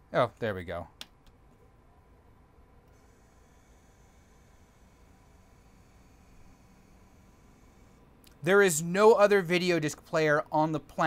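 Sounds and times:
faint mechanical hum: 0:00.0 - 0:11.0.

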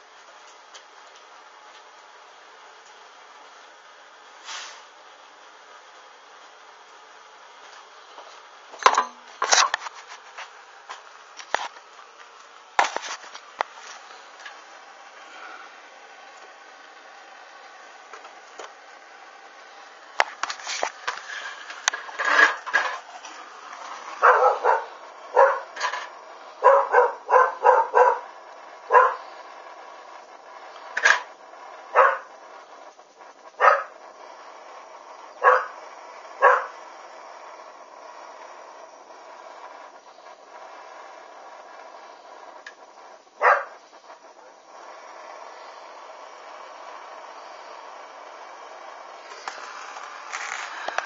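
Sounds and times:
background hiss: 0:00.0 - 0:51.0
dog barking: 0:24.2 - 0:25.7, 0:26.6 - 0:28.3, 0:28.9 - 0:29.2, 0:32.0 - 0:32.3, 0:33.6 - 0:34.0, 0:35.4 - 0:35.8, 0:36.4 - 0:36.8, 0:43.4 - 0:43.8.

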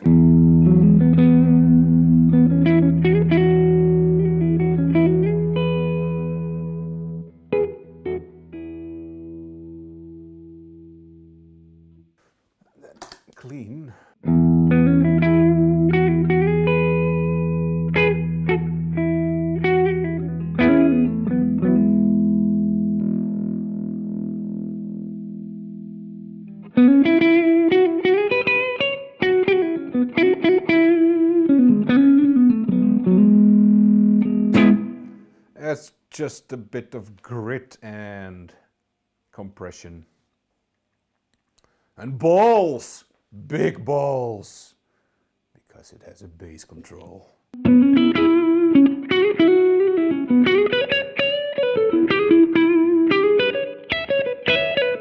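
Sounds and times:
electric guitar through an amp: 0:00.0 - 0:11.8, 0:14.2 - 0:35.3, 0:47.6 - 0:55.0.

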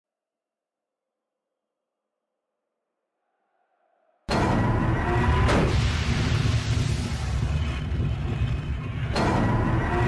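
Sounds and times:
heavy low rumble: 0:04.3 - 0:10.0.

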